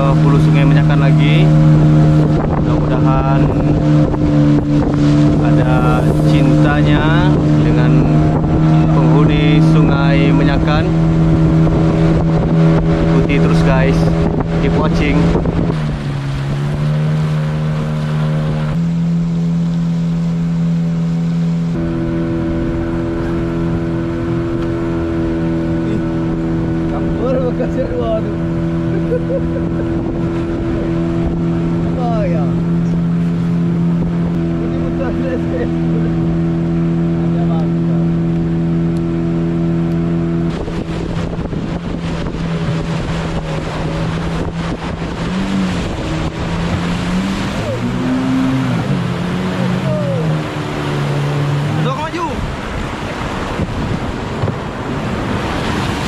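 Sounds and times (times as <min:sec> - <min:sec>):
boat engine running: 0:00.0 - 0:56.0
rushing water: 0:00.0 - 0:56.0.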